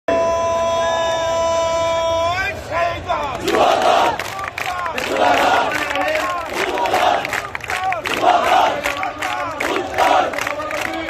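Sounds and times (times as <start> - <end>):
man shouting slogan: 0.1 - 3.4
crowd shouting back: 0.1 - 11.0.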